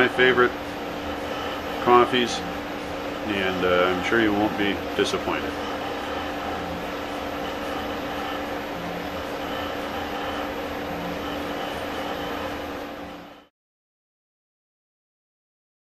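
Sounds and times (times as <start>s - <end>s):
steady mechanical hum: 0.0s - 13.5s.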